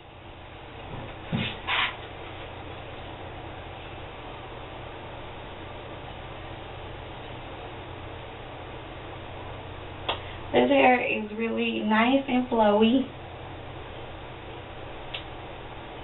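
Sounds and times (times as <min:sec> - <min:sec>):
low hum: 0:00.0 - 0:16.0
steady hiss: 0:00.0 - 0:16.0.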